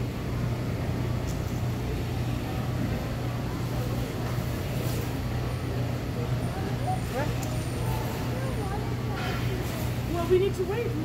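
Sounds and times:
faint voices talking: 0:00.0 - 0:11.0
store indoor hum: 0:00.0 - 0:11.0.

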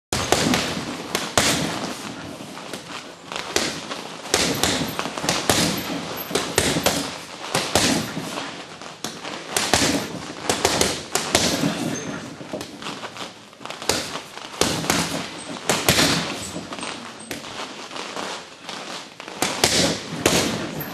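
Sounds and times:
punches on a heavy bag: 0:00.2 - 0:02.9, 0:03.5 - 0:12.0, 0:13.8 - 0:17.4, 0:19.4 - 0:20.9.

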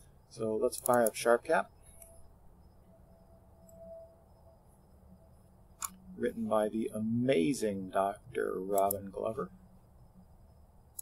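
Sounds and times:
faint thin tone: 0:00.0 - 0:10.8
faint low hum: 0:00.0 - 0:11.0.

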